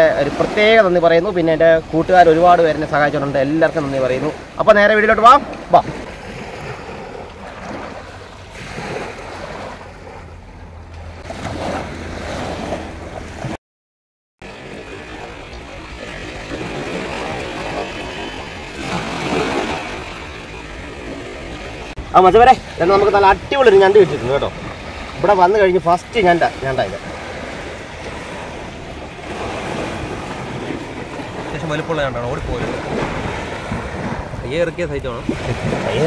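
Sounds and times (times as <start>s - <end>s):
small waves washing on sand: 0.0s - 13.6s, 14.4s - 36.0s
wind rumbling on microphone: 14.4s - 36.0s.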